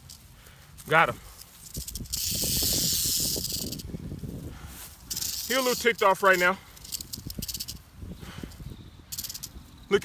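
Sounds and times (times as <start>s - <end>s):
dry grass rustling: 0.0s - 10.0s
rattlesnake rattle buzzing: 1.4s - 4.0s, 5.0s - 10.0s.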